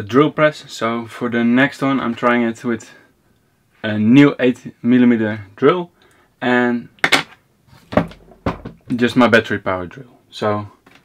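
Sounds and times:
objects knocking on wooden workbench: 7.1s - 9.0s.

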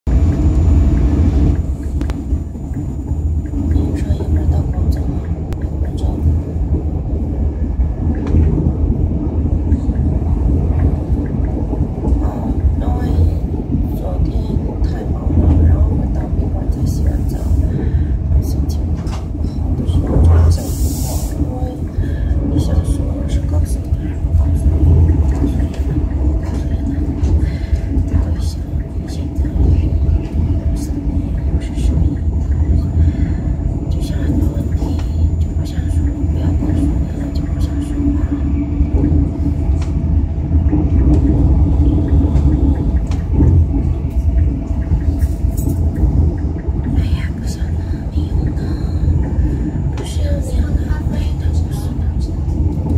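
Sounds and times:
train rumbling: 0.0s - 52.9s
background voices: 3.4s - 39.8s, 40.4s - 52.9s.

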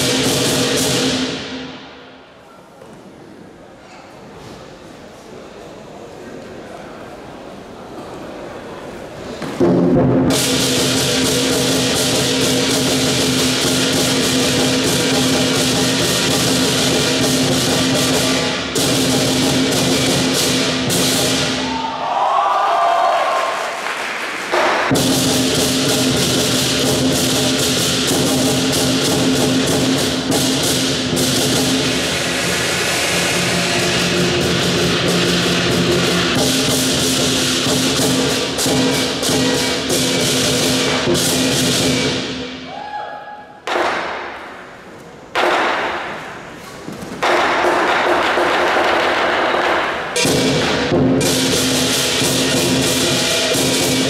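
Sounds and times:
big drum beating: 0.0s - 2.0s, 9.5s - 21.8s, 24.5s - 42.6s, 47.2s - 54.0s
crashing cymbals: 0.0s - 2.2s, 24.6s - 42.7s, 50.2s - 54.0s.

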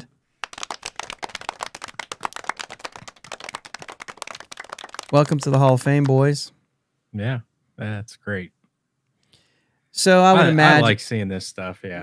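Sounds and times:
hand clapping: 0.4s - 6.4s.

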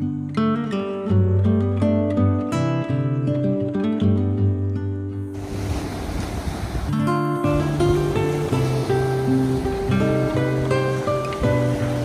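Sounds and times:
acoustic guitar music: 0.0s - 12.0s
ocean waves on beach: 5.2s - 12.0s.

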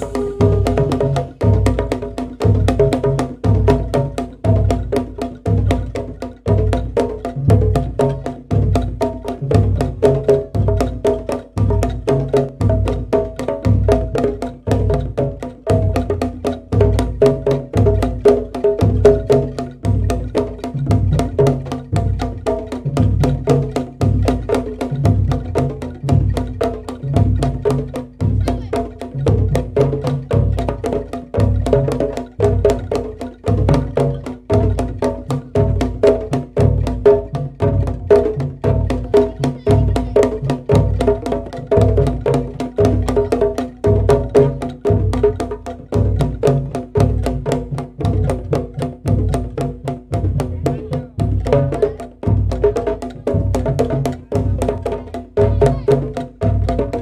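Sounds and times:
bamboo flute melody: 0.0s - 1.8s
hand drum strokes: 0.0s - 57.0s.

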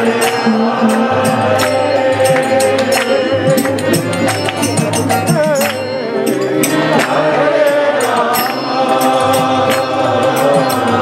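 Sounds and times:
harmonium: 0.0s - 11.0s
voices chanting: 0.0s - 11.0s.

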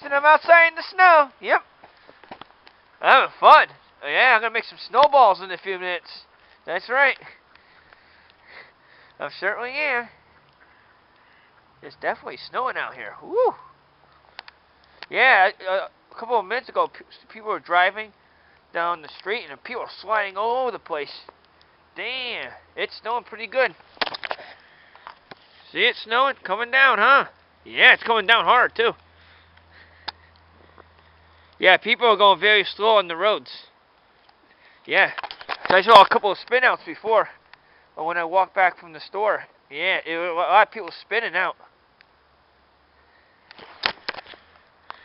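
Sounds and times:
man speaking: 0.0s - 1.7s, 3.0s - 7.4s, 9.2s - 10.2s, 11.8s - 13.7s, 15.1s - 18.1s, 18.7s - 21.3s, 22.0s - 23.8s, 25.6s - 29.0s, 31.6s - 33.8s, 34.9s - 37.4s
outdoor hiss: 0.0s - 45.0s
faint sniff: 7.2s - 9.2s.

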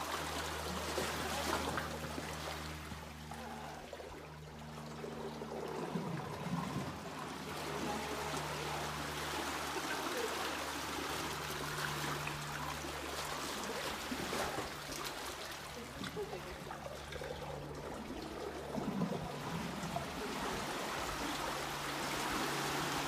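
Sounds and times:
water sloshing against rock walls: 0.0s - 23.0s.

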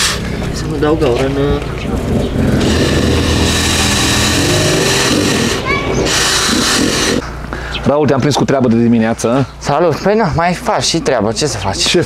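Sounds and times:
low engine hum: 0.0s - 7.9s
cordless drill drilling into plastic: 2.6s - 7.2s.

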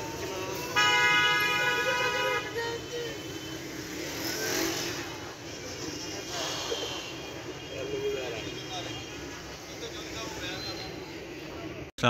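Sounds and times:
street traffic hum: 0.0s - 12.0s
vehicle horn blare: 0.5s - 3.8s.

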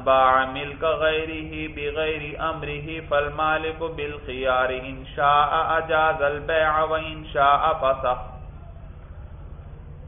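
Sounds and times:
man chanting: 0.0s - 8.4s.

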